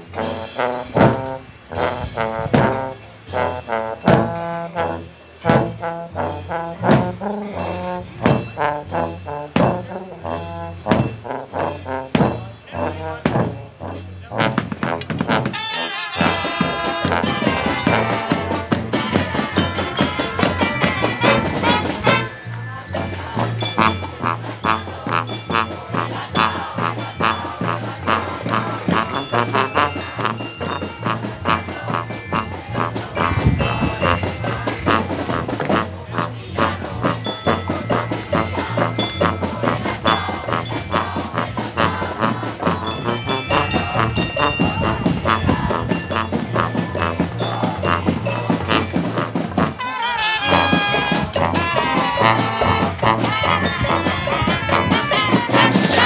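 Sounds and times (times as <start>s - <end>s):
marching band playing: 0.0s - 56.0s.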